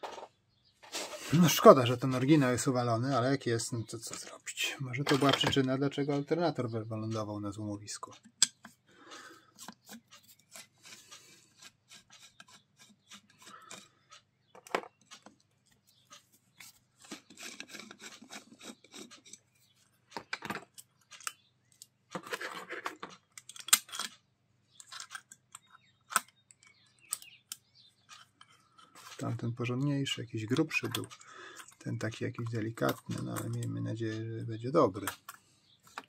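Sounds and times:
scraping and rubbing: 0.0 - 3.2, 9.5 - 14.2, 16.1 - 20.4, 22.1 - 23.2, 28.0 - 29.4
metal parts clicking: 22.2 - 24.2, 24.8 - 28.5.

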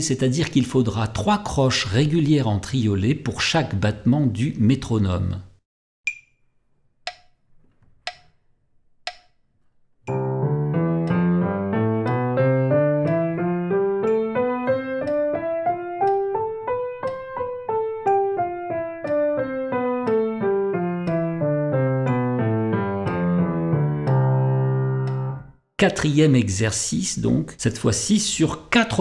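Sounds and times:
metronome clicking: 6.0 - 7.4, 8.0 - 22.4, 23.0 - 25.5
piano playing a scale: 10.1 - 25.6.

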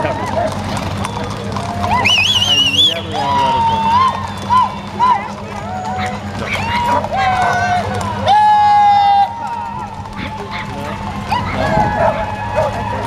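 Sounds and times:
people talking on street: 0.0 - 13.0.

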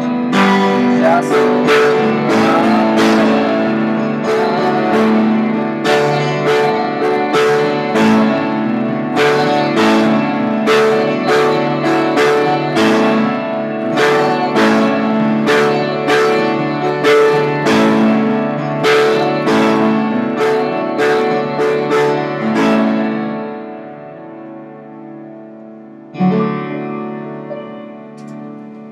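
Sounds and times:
upright piano repeated chords: 0.0 - 28.9.

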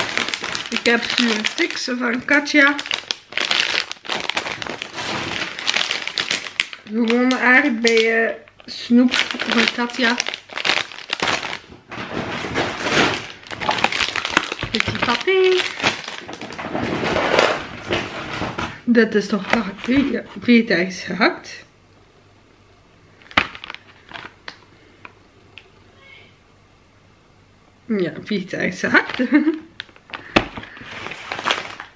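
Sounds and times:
plastic sweet packets crinkling: 0.0 - 18.1, 19.2 - 20.7, 23.2 - 25.2, 28.6 - 31.9.

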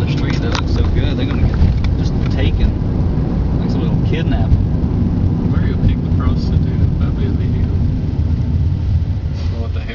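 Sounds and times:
car engine rumble: 0.0 - 9.9
road noise: 0.0 - 9.9.

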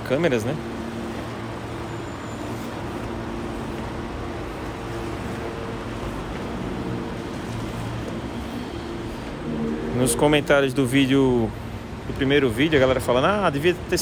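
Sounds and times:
mechanical hum: 0.0 - 14.0.

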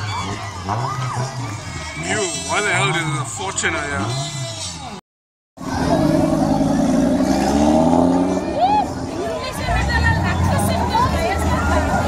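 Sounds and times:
crowd whooping: 0.0 - 3.0, 8.0 - 12.0
crowd chatter: 0.0 - 5.0, 5.6 - 12.0
deep engine rumble: 5.6 - 12.0.

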